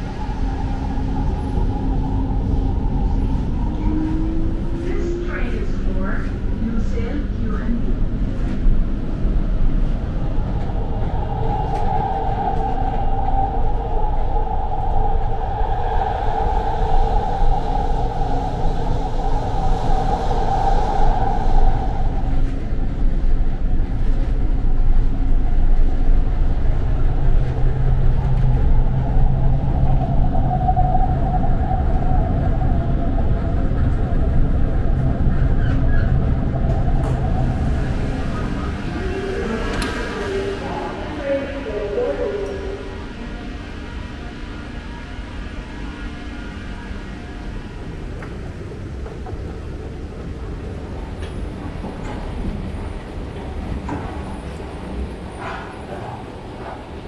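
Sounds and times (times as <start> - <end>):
electric train rolling rumble: 0.0 - 57.0.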